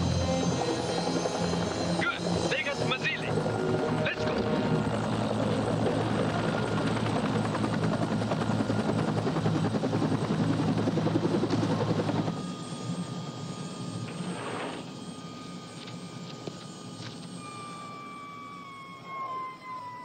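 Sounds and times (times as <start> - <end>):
helicopter rotor beating: 0.0 - 20.0.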